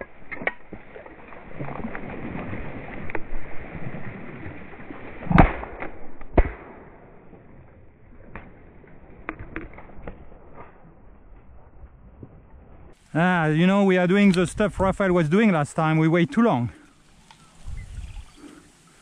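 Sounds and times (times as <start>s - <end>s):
reeds rustling: 13.0s - 19.0s.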